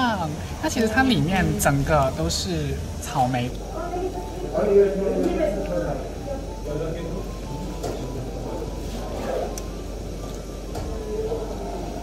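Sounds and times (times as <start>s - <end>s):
people chattering: 0.0s - 12.0s
steady low hum: 0.0s - 12.0s.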